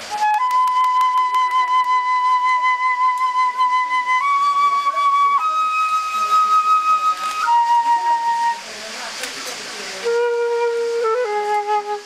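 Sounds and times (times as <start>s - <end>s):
flute note: 0.0s - 12.0s.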